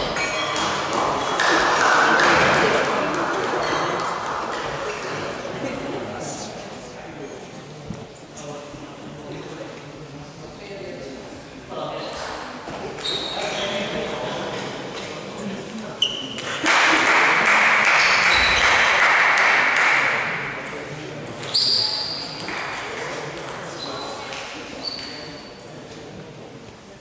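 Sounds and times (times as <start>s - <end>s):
table tennis balls pinging: 0.0s - 5.3s, 16.2s - 24.4s
voices in echoing hall: 0.0s - 27.0s.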